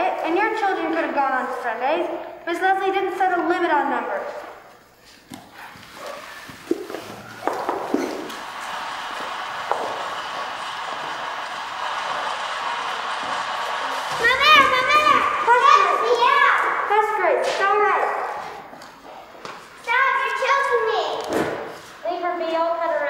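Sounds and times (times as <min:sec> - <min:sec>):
children's voices: 0:14.0 - 0:18.6, 0:19.8 - 0:23.0.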